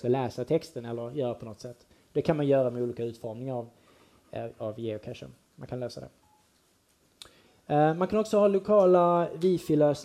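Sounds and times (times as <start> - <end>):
man speaking: 0.0 - 6.2, 7.7 - 10.0
faint short beep: 6.2 - 6.5.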